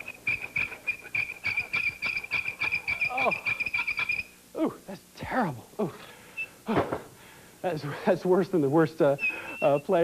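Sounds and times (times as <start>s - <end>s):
auger squeaking in wood: 0.0s - 4.4s, 9.2s - 10.0s.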